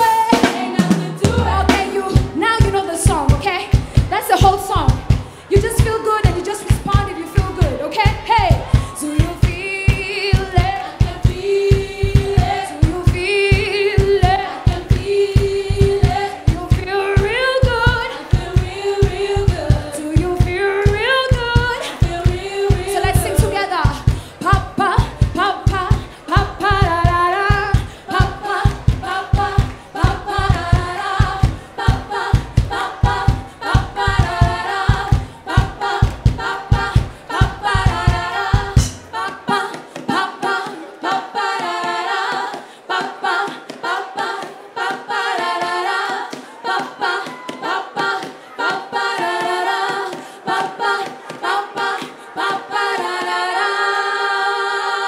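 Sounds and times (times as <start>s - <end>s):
steady drum beat: 0.0s - 53.4s
women singing: 0.0s - 55.0s.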